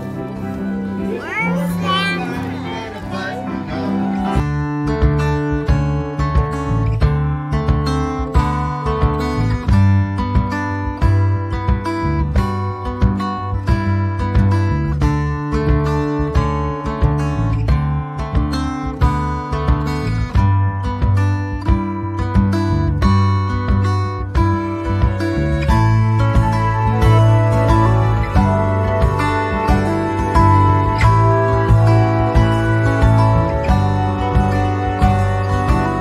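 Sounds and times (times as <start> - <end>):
strummed acoustic guitar: 0.0 - 36.0.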